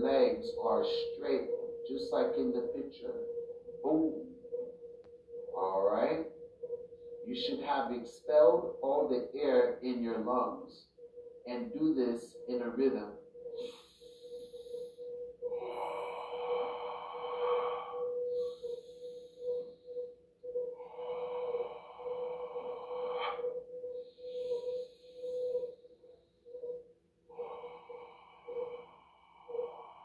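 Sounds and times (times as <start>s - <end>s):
steady faint tone: 0.0s - 30.0s.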